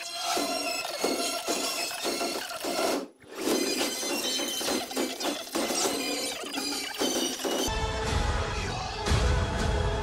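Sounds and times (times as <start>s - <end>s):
trailer music: 7.7s - 10.0s.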